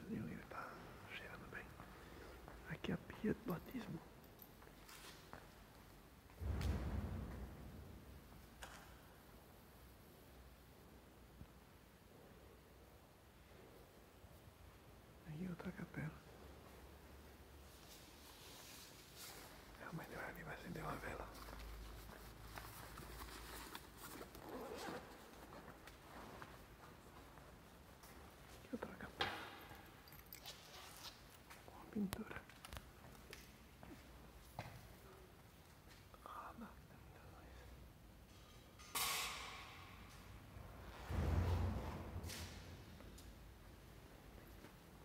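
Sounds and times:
backpack clicks and rustles: 21.9s - 26.0s.

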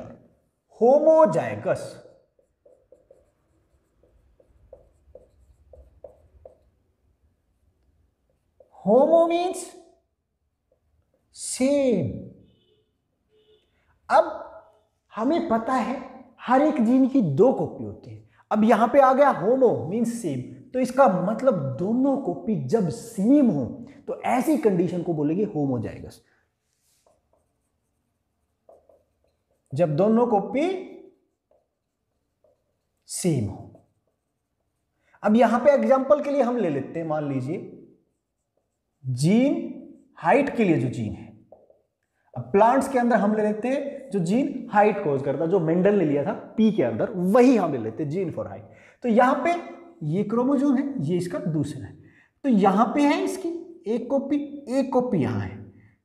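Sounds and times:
marker pen writing on whiteboard: 0.0s - 11.5s, 20.8s - 45.4s.

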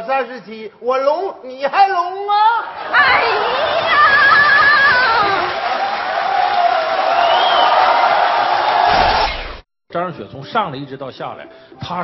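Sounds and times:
audience applauding and cheering: 2.7s - 9.5s.

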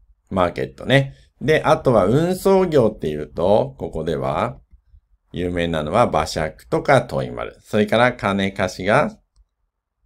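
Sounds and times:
man speaking: 0.2s - 4.7s, 5.3s - 9.3s.

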